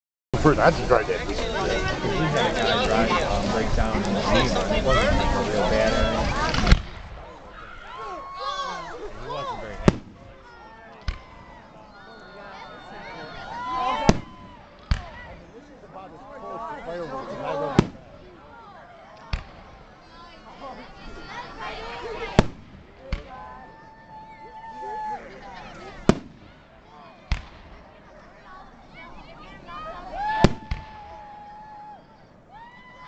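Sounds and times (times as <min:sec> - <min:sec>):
firework bang: 0:06.4 - 0:07.3, 0:09.8 - 0:10.3, 0:14.1 - 0:15.2, 0:17.7 - 0:18.1, 0:22.3 - 0:23.3, 0:26.0 - 0:26.6, 0:30.4 - 0:31.1.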